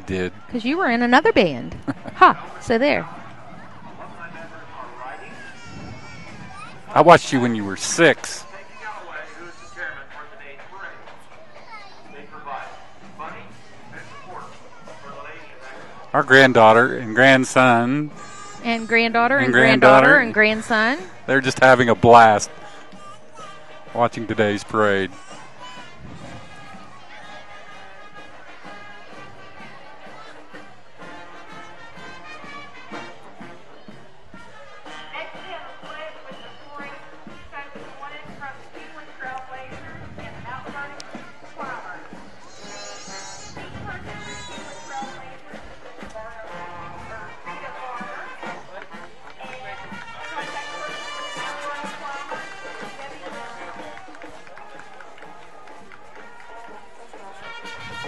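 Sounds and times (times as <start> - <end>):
drums: 0.0 - 58.0
marching band playing: 12.6 - 58.0
trumpets: 15.6 - 38.9, 42.2 - 45.4, 46.3 - 54.6, 55.2 - 58.0
sousaphones: 18.9 - 21.0.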